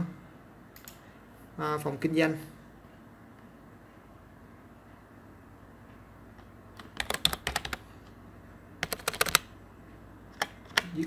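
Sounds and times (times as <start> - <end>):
computer keyboard typing: 6.8 - 7.8, 8.8 - 9.5.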